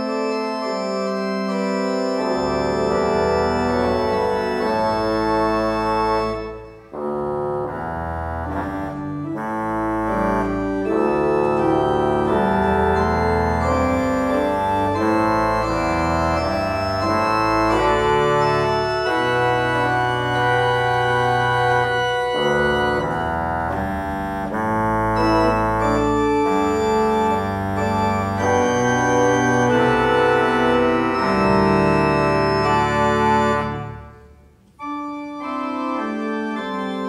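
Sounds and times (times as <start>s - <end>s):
pipe organ chords: 0.0s - 37.0s.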